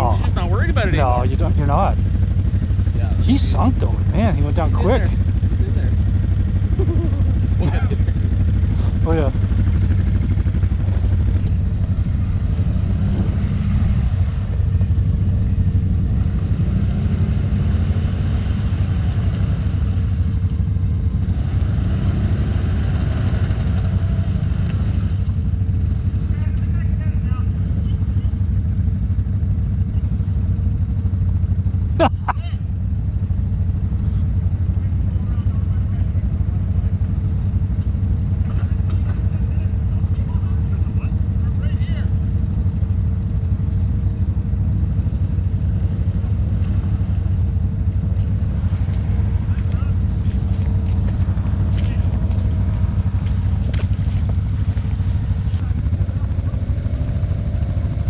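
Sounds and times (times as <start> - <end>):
engine idling: 0.0 - 18.0, 18.9 - 58.0.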